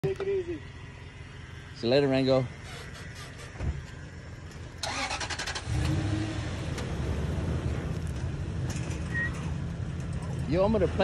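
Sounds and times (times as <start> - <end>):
car engine starting and idling: 0.1 - 11.0.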